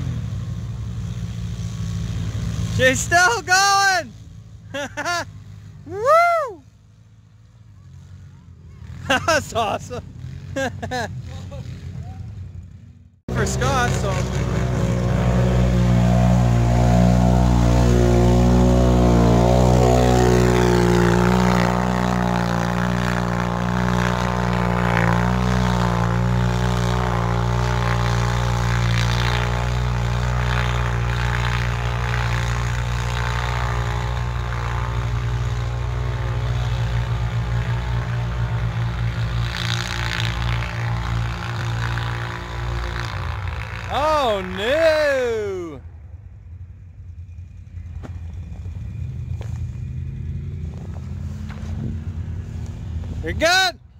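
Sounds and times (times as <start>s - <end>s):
atv engines running hard: 0.0s - 53.9s.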